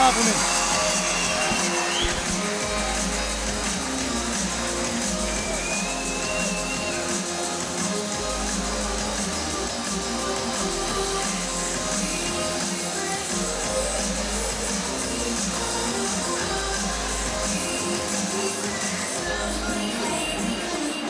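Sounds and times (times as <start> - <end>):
music with gliding melody: 0.0 - 21.0
voices: 0.0 - 21.0.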